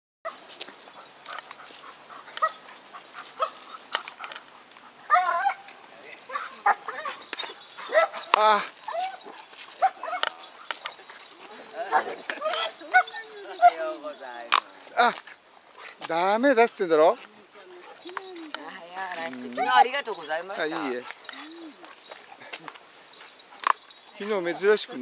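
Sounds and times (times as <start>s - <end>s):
dog whining and yipping: 0.3s - 5.7s, 6.3s - 13.9s, 19.5s - 24.2s.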